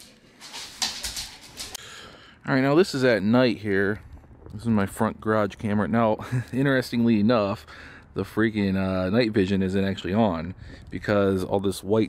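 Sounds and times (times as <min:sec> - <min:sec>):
dogs scuffling on wood floor: 0:00.0 - 0:01.8.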